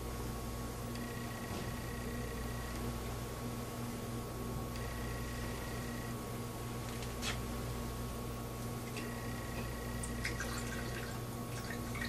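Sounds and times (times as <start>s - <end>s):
steady electrical hum: 0.0s - 12.0s
liquid dripping: 10.0s - 12.0s.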